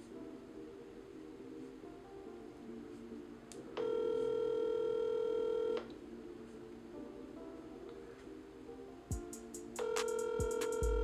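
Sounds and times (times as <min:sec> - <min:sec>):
telephone ringback tone: 0:03.8 - 0:05.9, 0:09.8 - 0:11.0.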